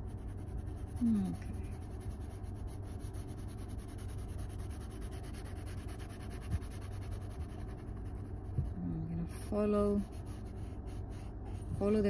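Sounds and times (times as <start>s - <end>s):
pencil rubbing on paper: 0.0s - 8.7s, 9.5s - 12.0s.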